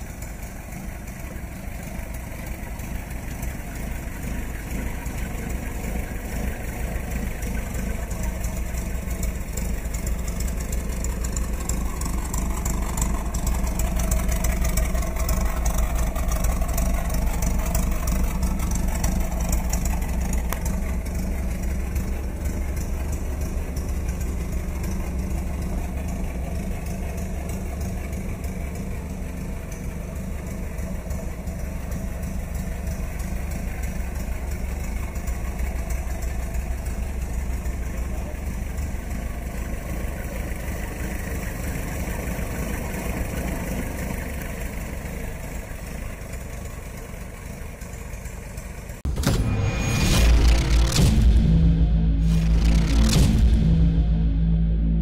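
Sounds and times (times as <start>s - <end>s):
truck engine idling: 0.0s - 55.0s.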